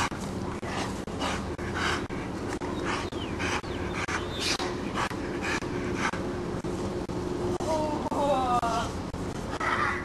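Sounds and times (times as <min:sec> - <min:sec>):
dog panting hard: 0:00.0 - 0:07.0.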